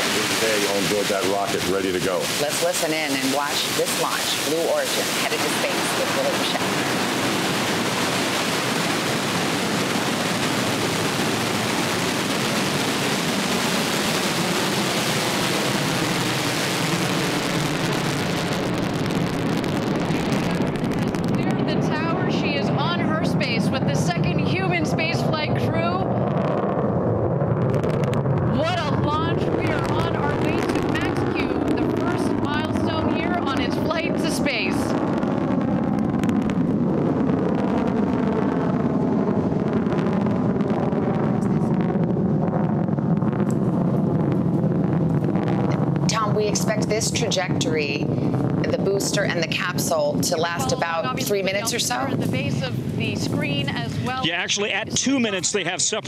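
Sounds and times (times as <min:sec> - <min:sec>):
voices: 0:00.0 - 0:08.1, 0:21.3 - 0:26.1, 0:28.5 - 0:35.0, 0:46.1 - 0:56.0
rocket engine roaring: 0:00.0 - 0:56.0.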